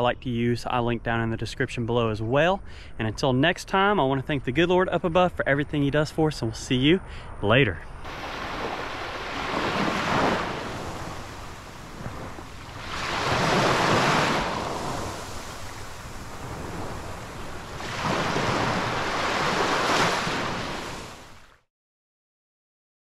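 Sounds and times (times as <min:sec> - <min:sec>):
small surf washing up beach: 0:08.0 - 0:21.6.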